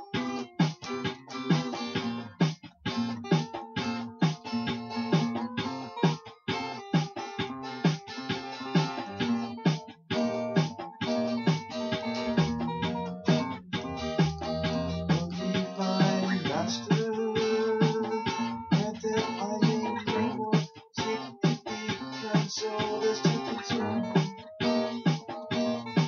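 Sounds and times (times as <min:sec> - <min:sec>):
acoustic guitar strumming: 0:00.0 - 0:26.0.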